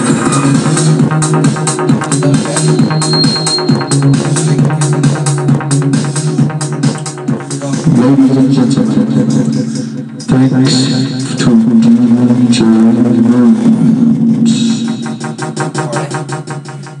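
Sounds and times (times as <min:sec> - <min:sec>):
bass line: 0:00.0 - 0:17.0
fast even beat: 0:00.0 - 0:17.0
loud dance music: 0:00.0 - 0:17.0
vocal line: 0:00.0 - 0:17.0.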